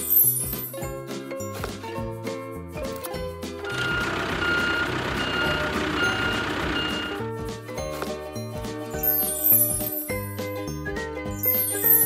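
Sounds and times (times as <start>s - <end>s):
backup alarm beeps: 3.7s - 7.2s.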